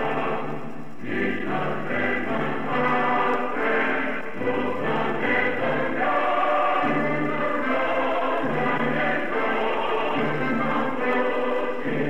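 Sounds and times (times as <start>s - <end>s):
choir singing an anthem: 0.0s - 12.0s.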